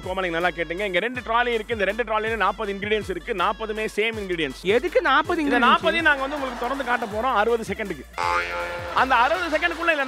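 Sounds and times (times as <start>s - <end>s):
background music: 0.0s - 10.0s
person speaking: 4.8s - 6.8s.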